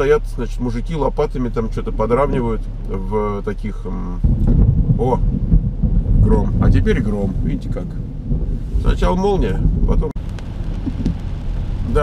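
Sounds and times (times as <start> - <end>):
thunder rumbling: 2.4 - 12.0.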